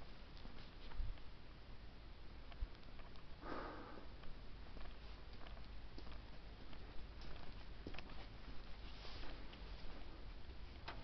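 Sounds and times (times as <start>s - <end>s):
person sniffing: 3.4s - 4.1s.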